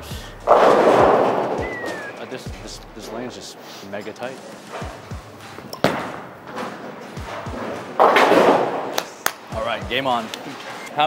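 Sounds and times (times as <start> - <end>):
bowling ball rolling: 0.5 - 2.2, 4.8 - 9.2
bowling pins crashing: 0.5 - 2.4, 5.8 - 9.1.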